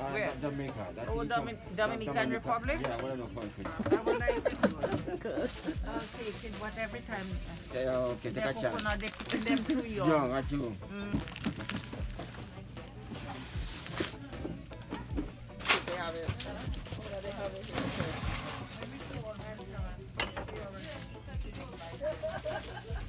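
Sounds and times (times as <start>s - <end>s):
background music: 0.0s - 23.0s
indistinct background speech: 0.0s - 23.0s.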